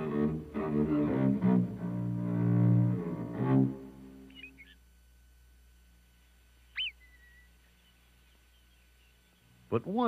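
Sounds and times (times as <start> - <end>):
faint chirps: 4.2 - 5.4, 6.1 - 9.8
marmot alarm whistle: 4.3 - 4.8, 6.7 - 7.9.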